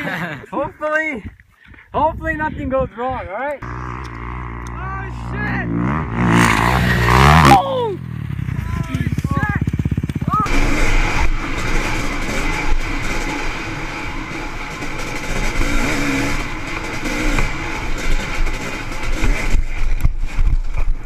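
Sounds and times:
dirt bike engine: 3.6 - 21.0
person shouting: 7.3 - 8.0.

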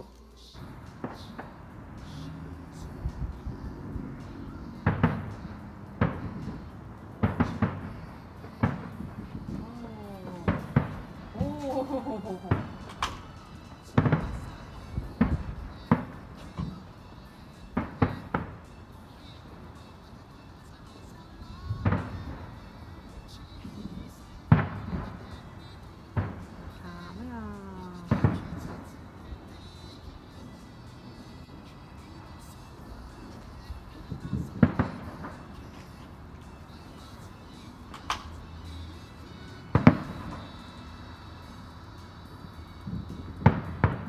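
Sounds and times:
distant fireworks bangs: 0.6 - 3.4, 4.1 - 18.9, 21.6 - 27.3, 28.1 - 29.6, 33.1 - 36.0, 39.7 - 40.7, 42.8 - 44.0.

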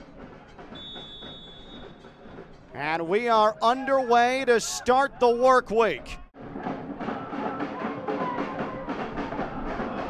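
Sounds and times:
faint stadium ambience: 0.0 - 10.0
referee's whistle blast: 0.8 - 2.0.

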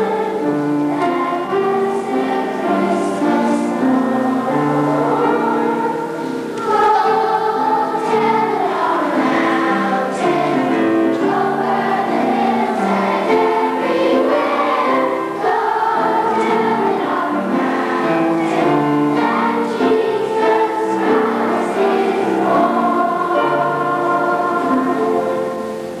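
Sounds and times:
children's choir singing: 0.0 - 26.0.

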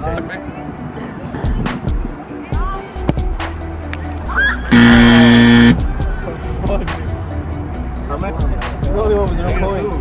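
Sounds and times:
background music: 1.7 - 10.0
loud horn blast: 4.7 - 5.8.

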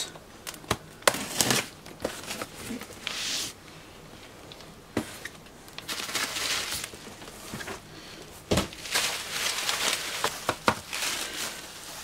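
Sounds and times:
cardboard rustling: 5.0 - 7.9, 8.5 - 12.0.

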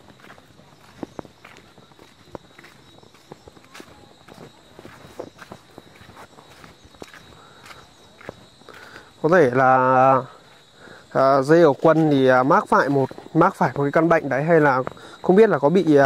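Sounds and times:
footsteps on dirt path: 0.0 - 16.0.

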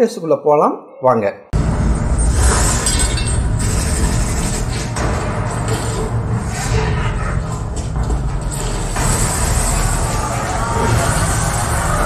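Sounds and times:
heavy bass rumble: 1.6 - 12.0.

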